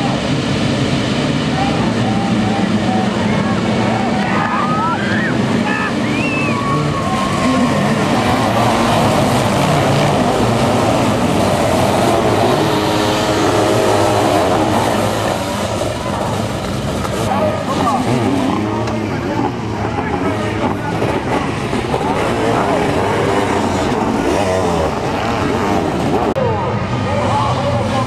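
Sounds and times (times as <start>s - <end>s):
many motorcycle engines revving: 0.0s - 28.0s.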